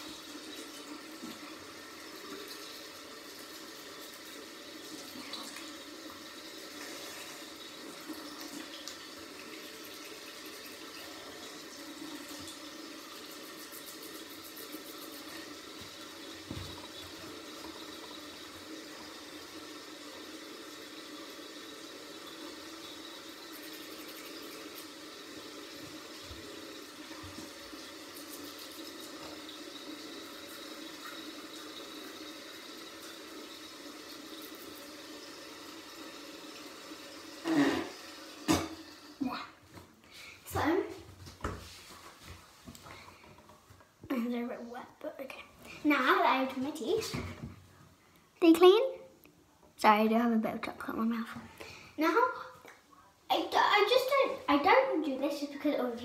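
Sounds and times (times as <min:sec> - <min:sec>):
tap water running into sink: 0:00.0 - 0:39.9, 0:40.5 - 0:44.3.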